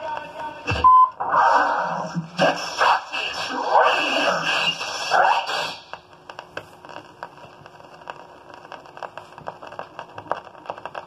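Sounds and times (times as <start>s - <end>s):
buzzy noisy electronic sound: 0.0s - 11.0s.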